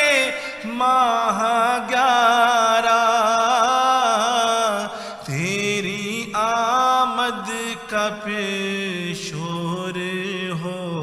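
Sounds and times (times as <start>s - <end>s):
man chanting a prayer: 0.0s - 11.0s.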